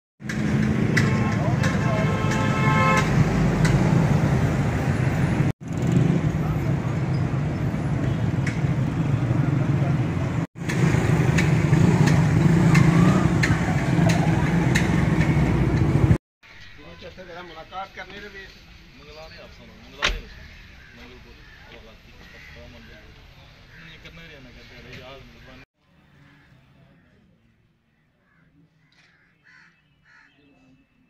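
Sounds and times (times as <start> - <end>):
vehicle engines running: 0.2 - 16.2
car horn: 0.9 - 3.5.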